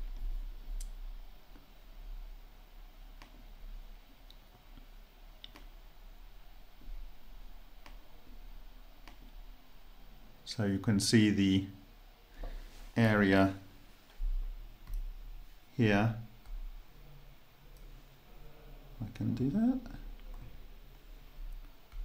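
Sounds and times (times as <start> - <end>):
low steady hum: 0.0 - 22.0
faint clicks: 4.2 - 5.8.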